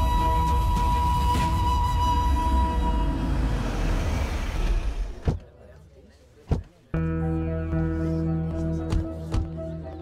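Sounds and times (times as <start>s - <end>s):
film score music: 0.0s - 5.2s.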